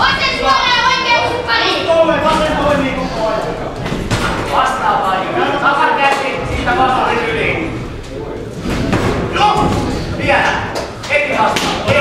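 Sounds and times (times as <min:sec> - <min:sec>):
ringside voices shouting: 0:00.0 - 0:03.7.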